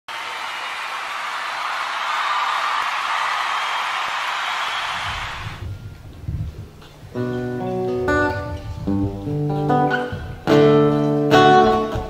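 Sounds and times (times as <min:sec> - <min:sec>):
audience applauding: 0:00.1 - 0:05.6.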